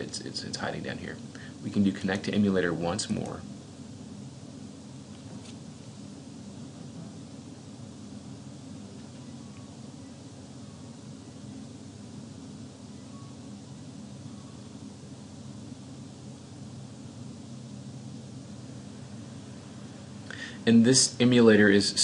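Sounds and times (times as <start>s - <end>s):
background hiss: 0.0s - 22.0s
low hum: 0.0s - 22.0s.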